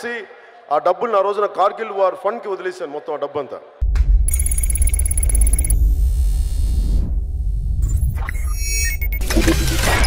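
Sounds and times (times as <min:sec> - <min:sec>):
bell-like electronic ringing tone: 0:04.3 - 0:05.9
deep electronic rumble: 0:05.2 - 0:09.9.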